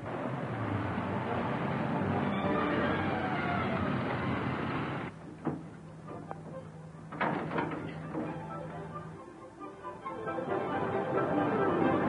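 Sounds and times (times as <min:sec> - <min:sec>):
van engine pulling away: 0:00.0 - 0:05.2
sharp knocks and rattles: 0:05.2 - 0:06.4, 0:07.1 - 0:08.4.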